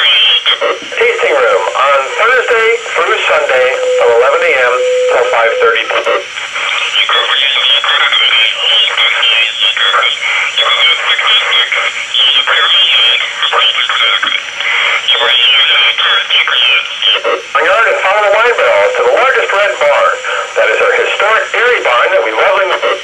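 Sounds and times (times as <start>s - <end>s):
garbled scrambled radio voice: 0.9s - 23.0s.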